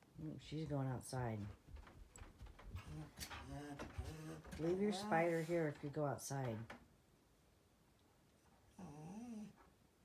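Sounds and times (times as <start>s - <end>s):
small dog whining: 8.8s - 9.6s.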